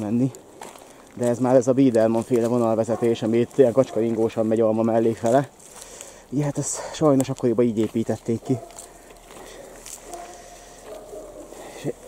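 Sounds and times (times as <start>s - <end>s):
man speaking: 0.0s - 0.4s, 1.2s - 5.6s, 6.3s - 8.8s, 11.6s - 12.0s.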